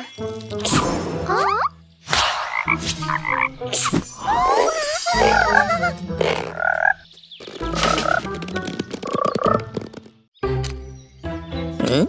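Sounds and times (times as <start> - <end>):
wobbling croak-like cries: 4.2 - 7.0.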